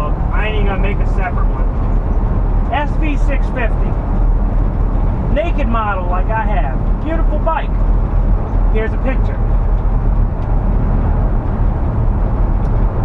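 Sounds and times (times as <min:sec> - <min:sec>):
van engine and road rumble: 0:00.0 - 0:13.0.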